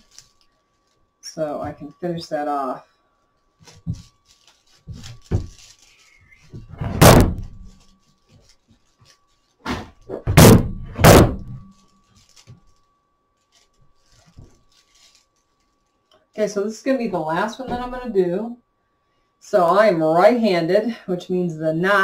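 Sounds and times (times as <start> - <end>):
faint steady hum: 0.0 - 22.0
heavy thumps: 6.4 - 7.9, 9.6 - 11.8.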